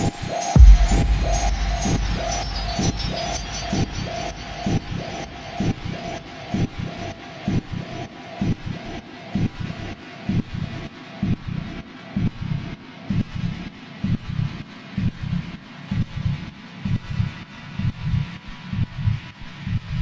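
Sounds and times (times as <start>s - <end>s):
dark electronic techno: 0.0s - 20.0s
held mid-pitched tone: 0.6s - 5.5s.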